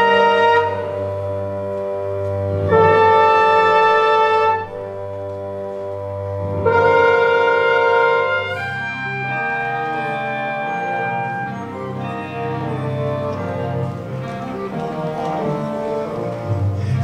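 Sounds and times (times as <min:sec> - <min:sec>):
orchestral brass chords: 0:00.0 - 0:17.0.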